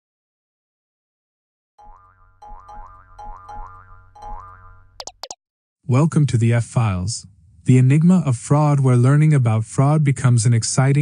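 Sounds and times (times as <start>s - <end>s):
bouncy pitched cartoon notes: 1.8s - 5.4s.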